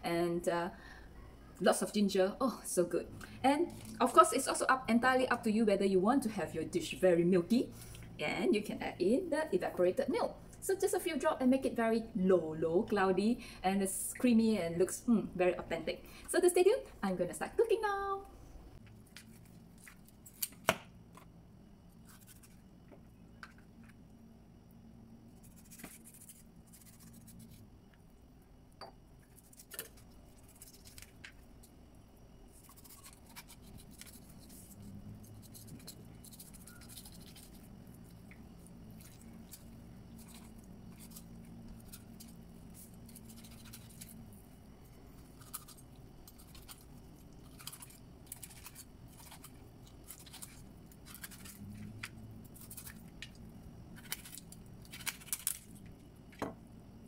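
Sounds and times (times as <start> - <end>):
knife scraping fish: 22.0 - 22.6, 25.4 - 27.6, 32.5 - 37.7, 39.0 - 44.2, 47.5 - 51.6.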